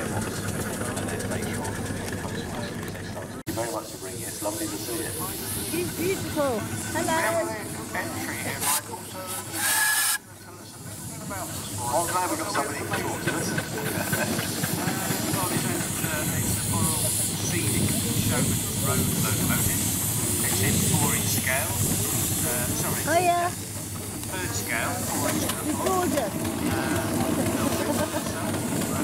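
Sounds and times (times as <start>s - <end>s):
steam engines beating: 0.0s - 29.0s
steam hiss: 3.5s - 29.0s.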